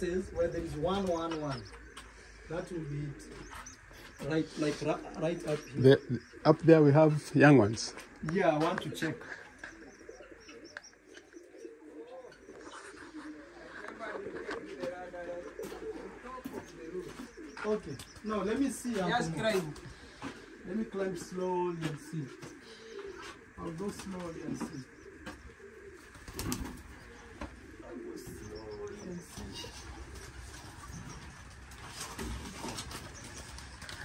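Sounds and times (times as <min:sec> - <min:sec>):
pigeons cooing: 0:00.0 - 0:34.0.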